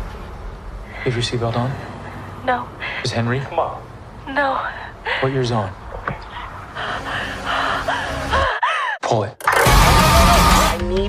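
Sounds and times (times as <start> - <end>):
trailer music: 9.4 - 11.0.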